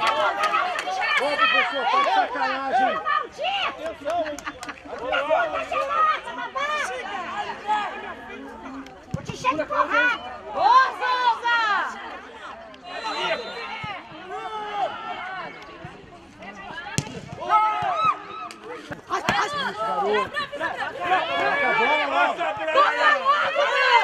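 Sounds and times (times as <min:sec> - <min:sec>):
voices calling out and talking: 0:00.0 - 0:24.0.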